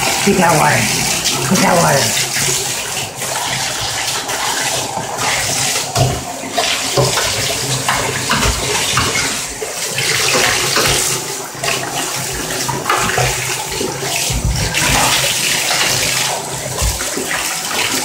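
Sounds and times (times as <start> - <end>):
water running into bathtub: 0.0 - 18.0.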